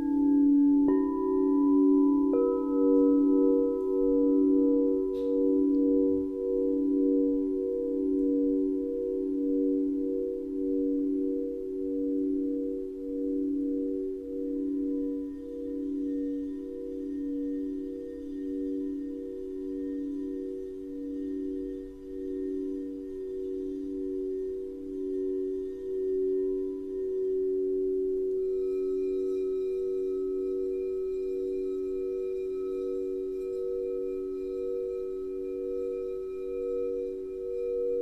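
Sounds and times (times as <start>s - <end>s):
crystal singing bowls ringing: 0.0s - 38.0s.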